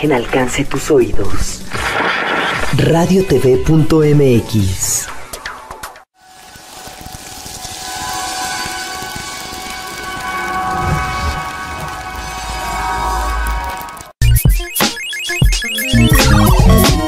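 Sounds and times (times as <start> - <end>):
hissing swell: 6.2 - 14.1.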